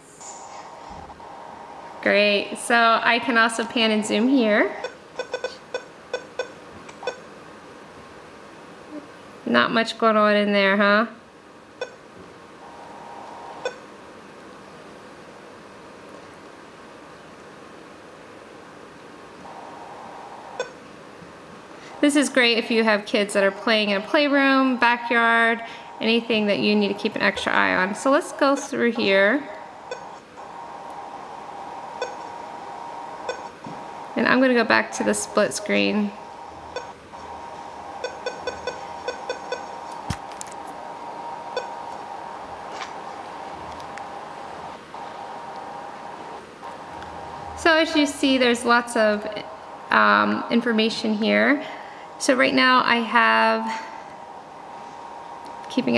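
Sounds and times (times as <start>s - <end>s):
faint hum: 0.0s - 55.9s
key-press beeps: 13.6s - 13.8s, 29.9s - 30.2s, 32.0s - 32.3s, 36.7s - 36.9s, 38.0s - 39.7s.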